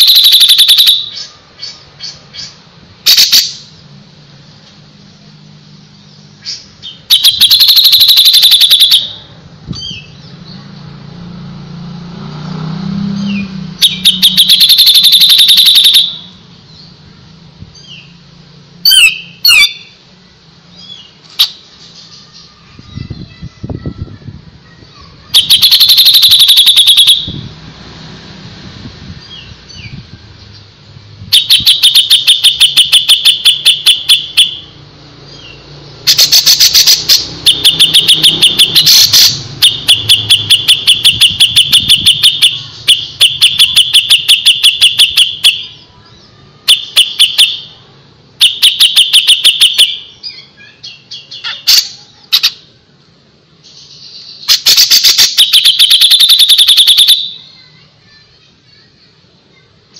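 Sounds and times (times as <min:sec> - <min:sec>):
bulbul singing: 0:00.0 - 0:03.8, 0:04.9 - 0:11.2, 0:13.0 - 0:17.1, 0:17.7 - 0:23.4, 0:25.1 - 0:27.5, 0:29.2 - 0:52.7.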